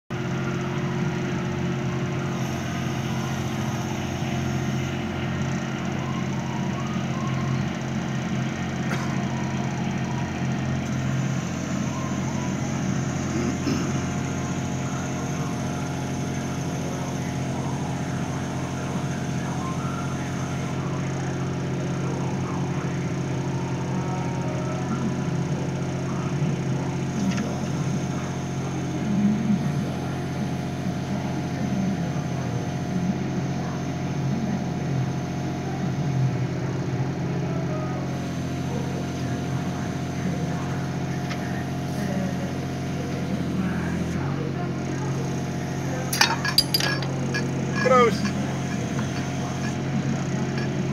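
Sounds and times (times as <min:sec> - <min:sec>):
crane engine running: 0:00.1 - 0:50.9.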